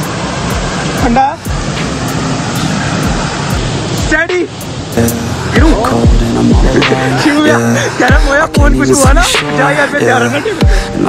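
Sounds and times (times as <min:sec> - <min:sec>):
water splashing from wading: 0:00.0 - 0:09.8
small waterfall rushing: 0:00.0 - 0:11.0.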